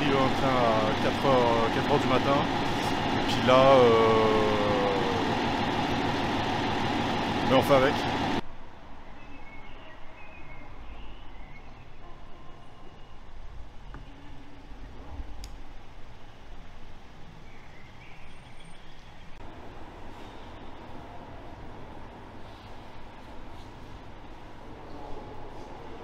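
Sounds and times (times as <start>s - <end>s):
street traffic rumble: 0.0s - 11.6s
station hall hum: 0.0s - 26.0s
click: 15.4s - 15.6s.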